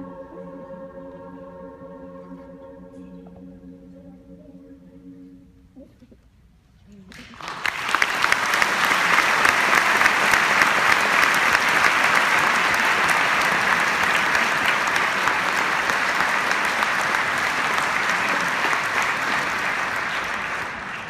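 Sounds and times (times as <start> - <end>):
audience applauding: 7.1 - 21.0.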